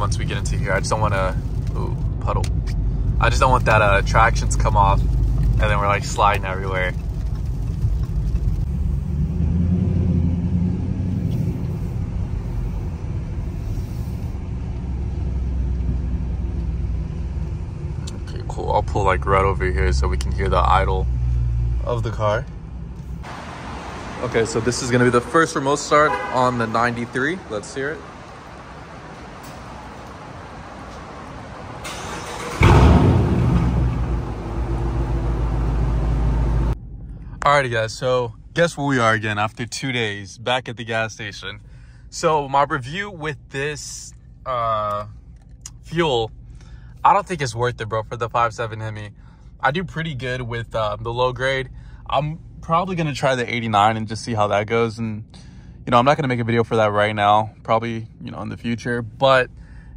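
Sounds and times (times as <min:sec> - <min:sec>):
car engine drone from inside: 0:00.0 - 0:39.6, 0:40.9 - 0:57.4.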